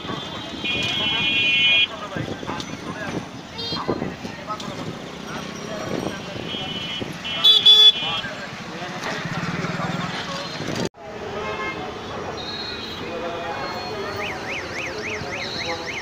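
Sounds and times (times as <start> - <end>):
traffic: 0.0 - 16.0
vehicle horn honking: 0.1 - 1.9, 6.4 - 8.3.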